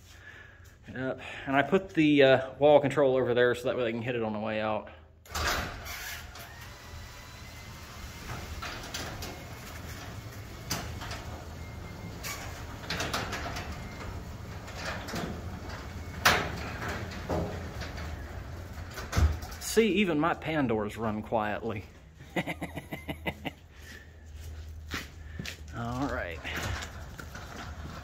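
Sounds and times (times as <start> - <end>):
garage door opener humming: 5.3 - 19.8, 26.4 - 28.0
door rollers clicking: 5.3 - 20.3, 26.1 - 28.0.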